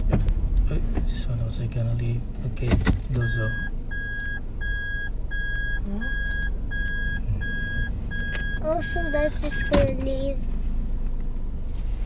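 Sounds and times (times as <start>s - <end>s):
reverse warning beeps: 3.2s - 9.8s.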